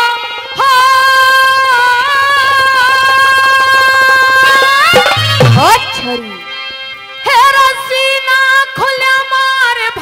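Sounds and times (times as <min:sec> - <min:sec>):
fast drum beat: 0:02.8 - 0:06.2.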